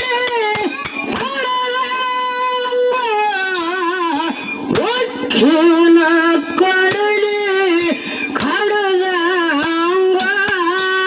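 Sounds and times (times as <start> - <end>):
hand cymbals: 0.0 - 11.0.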